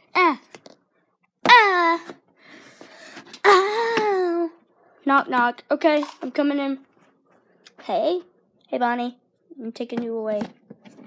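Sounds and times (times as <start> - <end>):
child moaning: 3.4 - 4.6
toys rustling and clicking: 5.8 - 6.5.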